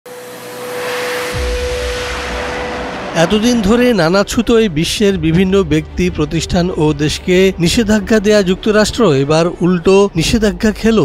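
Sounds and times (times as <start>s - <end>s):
jet engines roaring: 0.1s - 4.7s
deep rumble: 0.8s - 10.7s.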